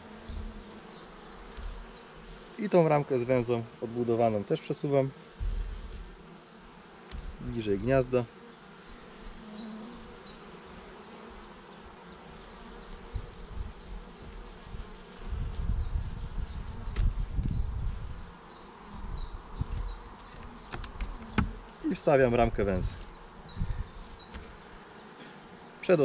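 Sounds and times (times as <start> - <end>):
honeybees buzzing: 0.0 - 26.0
wooden hive frames rumbling: 0.0 - 26.0.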